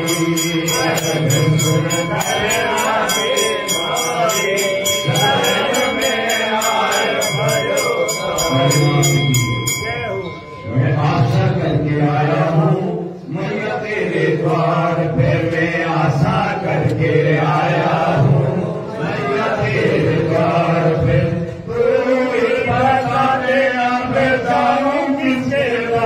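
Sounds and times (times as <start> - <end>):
voices chanting: 0.0 - 26.0.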